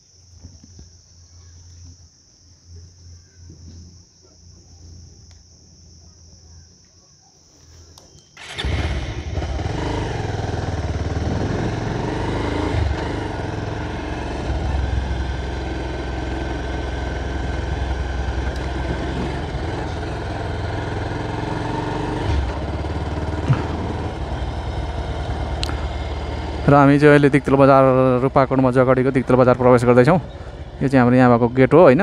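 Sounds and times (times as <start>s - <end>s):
motorcycle engine running: 8.4s - 32.0s.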